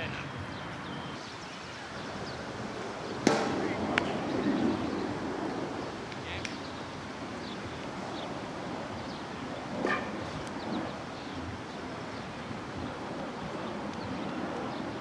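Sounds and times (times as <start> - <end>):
players' voices: 1.7 - 6.8
ball smacking: 3.2 - 4.2.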